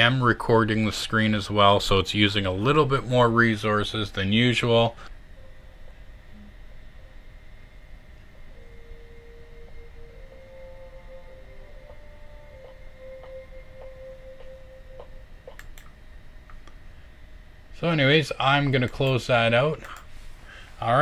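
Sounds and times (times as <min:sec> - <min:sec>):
low sustained film music: 0:00.0 - 0:17.3
steady background hum: 0:00.0 - 0:21.0.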